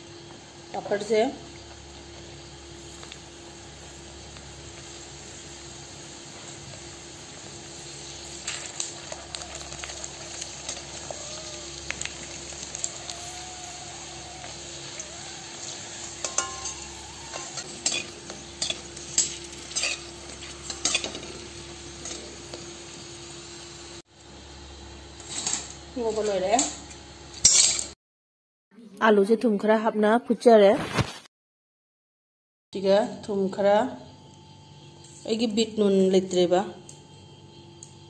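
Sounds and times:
food deep-frying in hot oil: 0:00.0 - 0:26.8
metal spoon scraping a wok: 0:15.6 - 0:21.3.

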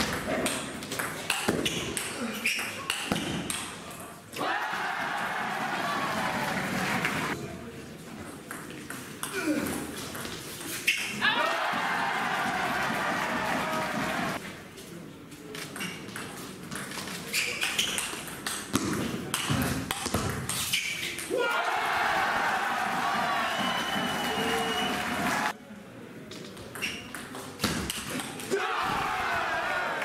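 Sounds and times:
crowd cheering: 0:04.4 - 0:07.4, 0:11.2 - 0:14.4, 0:21.3 - 0:25.6, 0:28.5 - 0:30.0.

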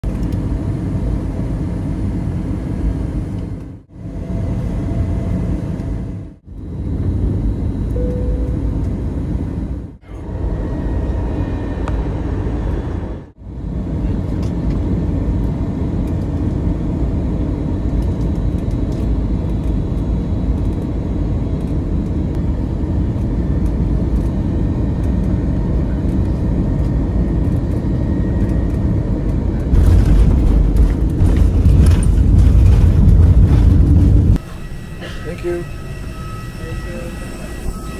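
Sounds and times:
jet engines and airflow rumble: 0:00.0 - 0:37.9.

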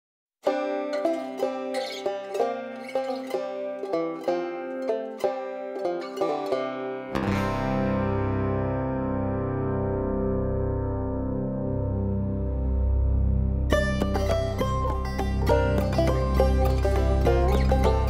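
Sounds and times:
banjo picking slow melody: 0:00.4 - 0:18.0
band with bass and chords: 0:07.2 - 0:18.0.

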